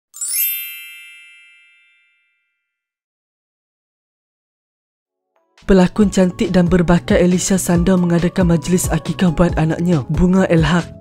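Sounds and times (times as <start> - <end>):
bright chime strike: 0.2 - 2.4
high ringing tones: 0.2 - 2.6.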